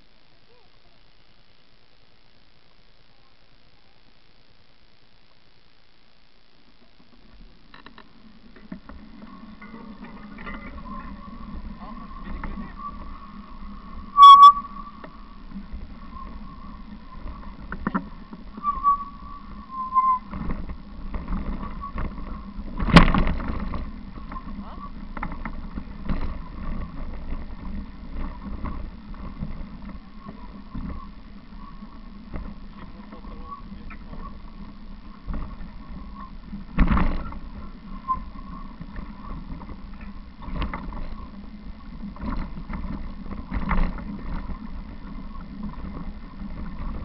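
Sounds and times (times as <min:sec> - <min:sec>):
bicycle rolling on dirt track: 0:06.5 - 0:47.0
sharp loud squeak: 0:14.1 - 0:15.0, 0:18.6 - 0:20.3.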